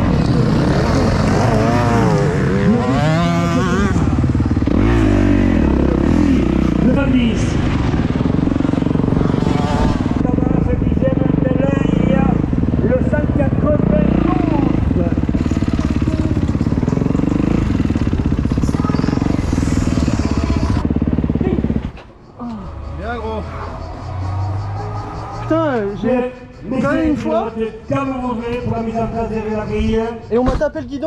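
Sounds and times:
motocross bike engines revving: 0:00.0 - 0:30.6.

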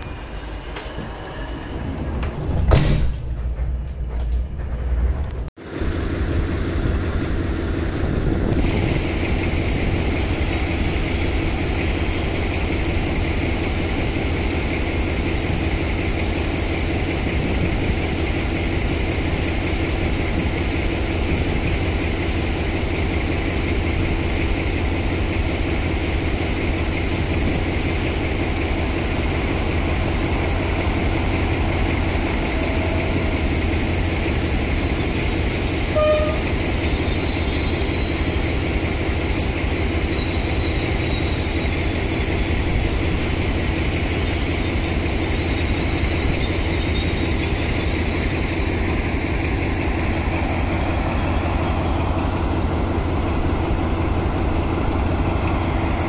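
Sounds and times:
locomotive engine idling: 0:03.0 - 0:56.0
train horn toot: 0:35.8 - 0:37.6.

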